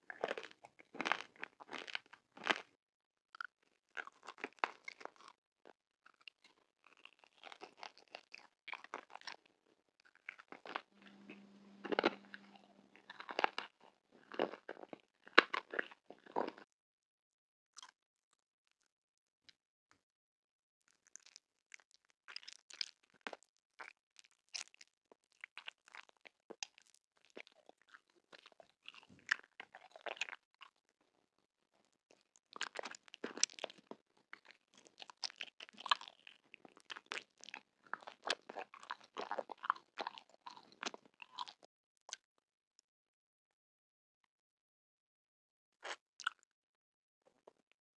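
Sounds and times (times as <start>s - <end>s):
chewing marshmallow: 0.0s - 2.7s, 3.3s - 16.7s, 20.9s - 42.2s, 45.8s - 46.4s
candy crunching: 0.1s - 2.7s, 3.4s - 5.4s, 6.1s - 9.4s, 10.0s - 16.6s, 22.3s - 30.8s, 32.1s - 41.6s
wet mouth clicks: 45.8s - 46.4s.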